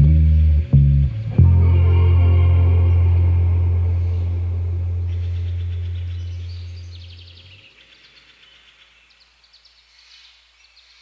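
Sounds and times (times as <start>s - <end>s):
bass and guitar chord ringing: 0.0s - 7.6s
faint rapid outdoor chirping: 2.9s - 11.0s.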